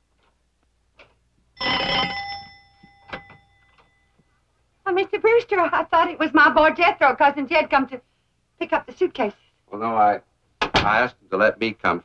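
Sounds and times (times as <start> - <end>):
doorbell ringing: 1.6 - 4.2.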